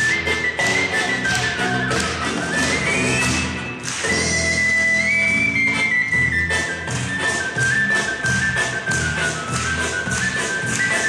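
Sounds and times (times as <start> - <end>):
fipple flute melody: 0.0 - 11.0.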